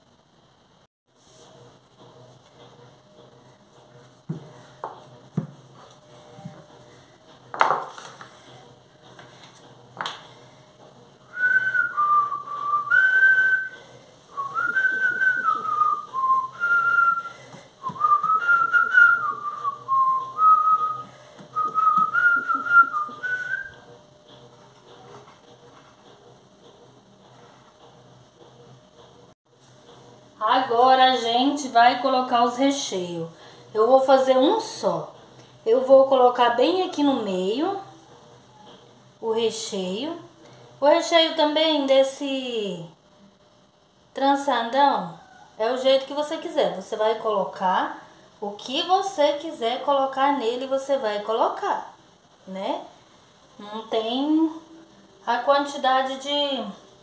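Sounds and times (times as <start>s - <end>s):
person whistling a slow tune: 11.3s - 23.9s.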